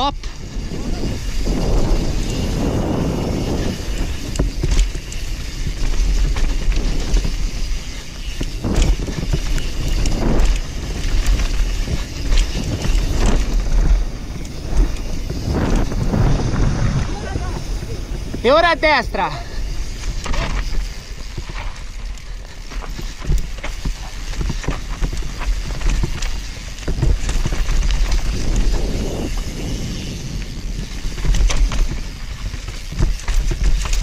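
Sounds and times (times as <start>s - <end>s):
bike clattering over bumps: 0.0s - 18.8s, 19.4s - 34.0s
bike tyres rumbling on dirt: 0.0s - 34.0s
wind on microphone: 0.0s - 34.0s.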